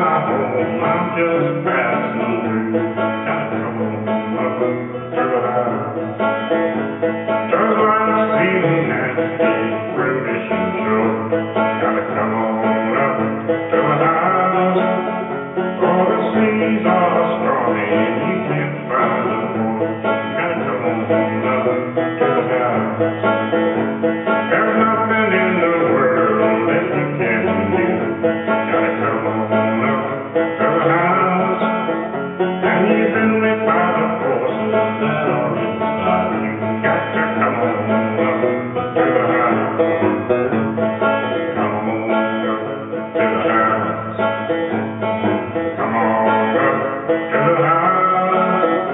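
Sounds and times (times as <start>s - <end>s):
banjo melody: 0.0s - 48.9s.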